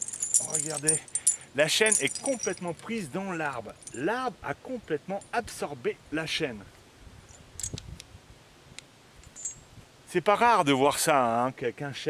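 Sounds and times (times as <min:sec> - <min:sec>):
metal chain clinking: 0:00.0 - 0:04.0, 0:09.2 - 0:09.7
high metallic ring: 0:09.3 - 0:09.7.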